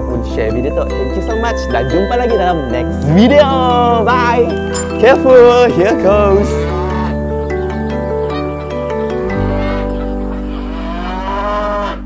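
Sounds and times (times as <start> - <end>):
background music: 0.0 - 12.0
water buffalo lowing: 6.3 - 12.0.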